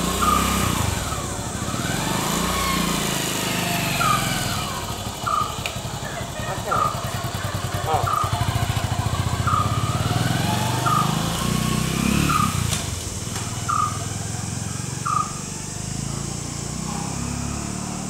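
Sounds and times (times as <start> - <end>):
low engine drone: 0.0 - 18.0.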